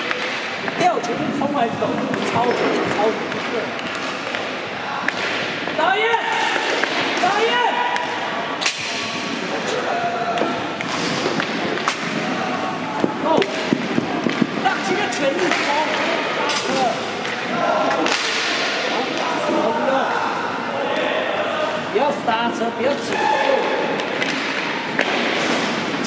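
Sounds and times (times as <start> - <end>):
hockey sticks clacking: 0.0 - 19.6, 23.0 - 26.0.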